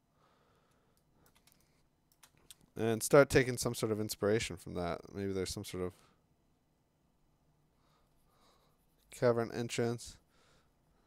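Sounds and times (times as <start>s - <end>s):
computer mouse clicks: 0.9s - 2.7s
man speaking: 2.8s - 6.1s, 9.1s - 10.2s.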